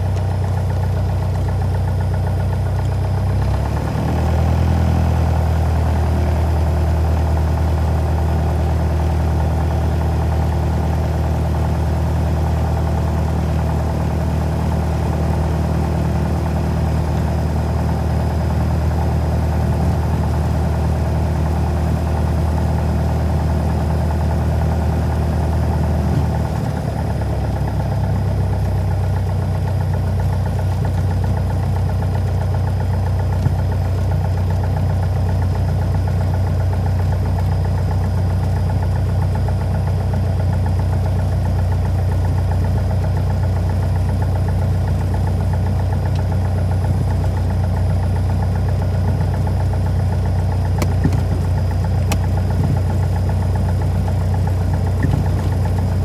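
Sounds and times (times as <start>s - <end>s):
plane piston engine and propeller: 0.0s - 56.0s.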